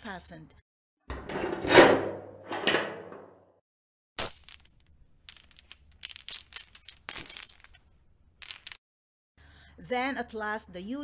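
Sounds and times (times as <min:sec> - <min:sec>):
heavy bar scraping: 0:01.1 - 0:02.7
chains rattling and jingling: 0:04.2 - 0:08.8
sharp metallic clank: 0:04.2 - 0:08.8.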